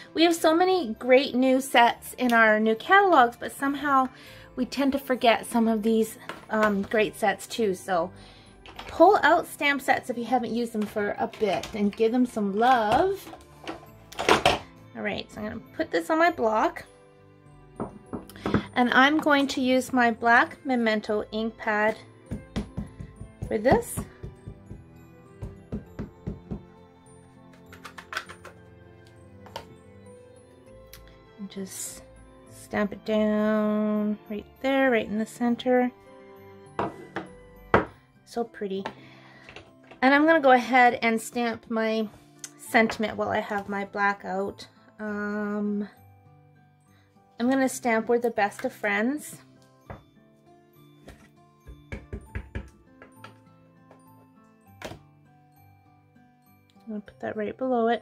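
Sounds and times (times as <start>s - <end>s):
soft background music: 0.0s - 58.0s
ink pad tapping on stamp: 22.3s - 24.8s, 51.8s - 53.2s.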